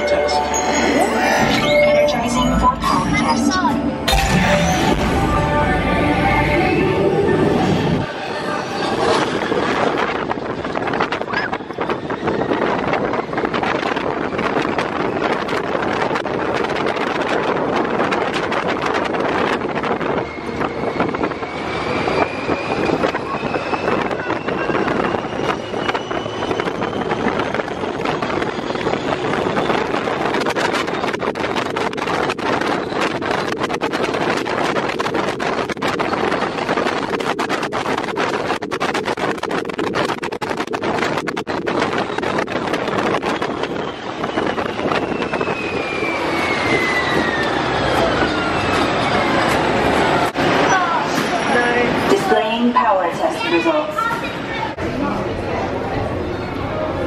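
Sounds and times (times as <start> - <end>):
vehicle whine: 0.0 - 57.0
wind buffeting microphone: 6.4 - 57.0
rush of wind and running noise: 7.2 - 57.0.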